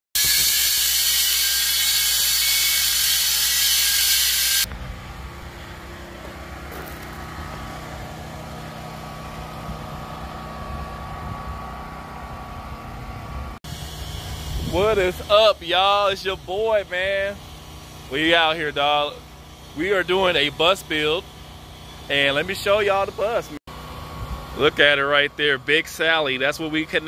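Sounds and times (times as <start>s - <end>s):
loud steady hiss: 0.2s - 4.7s, 13.7s - 23.5s
vehicle engine idling: 4.7s - 27.0s.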